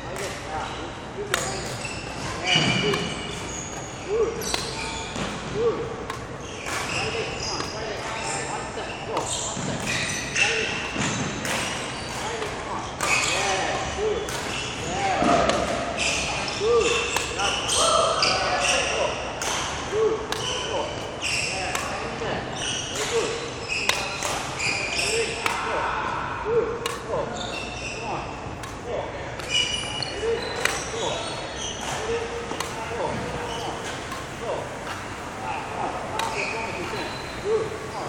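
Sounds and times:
rackets hitting shuttlecocks: 1.3s - 8.5s, 9.1s - 13.6s, 14.2s - 27.8s, 28.5s - 37.2s.

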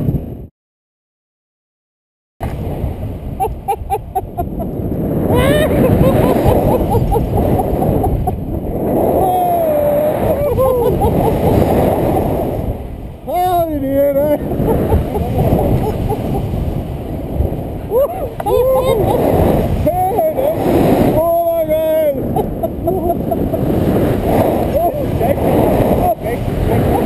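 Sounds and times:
wind buffeting microphone: 2.4s - 27.0s
people whooping: 5.3s - 6.8s, 17.9s - 19.3s.

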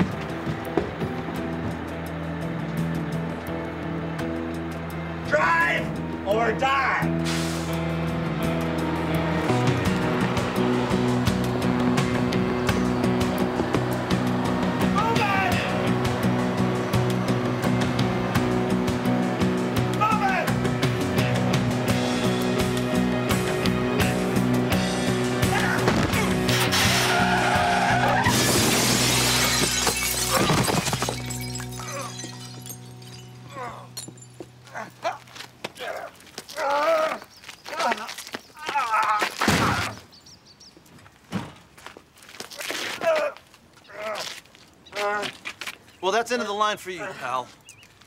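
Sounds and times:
action music: 0.0s - 30.4s
vehicle noise: 0.0s - 39.4s
crash with shattering glass: 28.2s - 34.3s.

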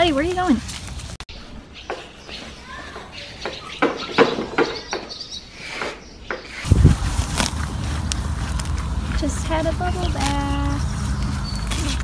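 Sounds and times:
wind rumble on microphone: 6.6s - 12.0s.

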